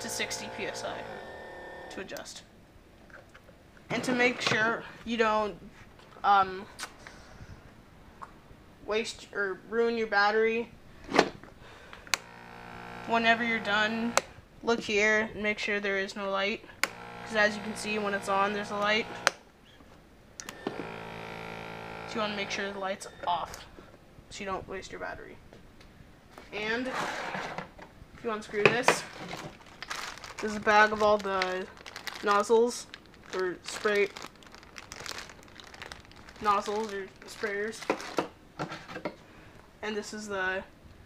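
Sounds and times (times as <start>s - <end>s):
sprayer humming: 0.0s - 2.0s, 12.2s - 14.4s, 16.9s - 19.3s, 20.5s - 23.7s
switch clicks: 20.4s - 20.8s.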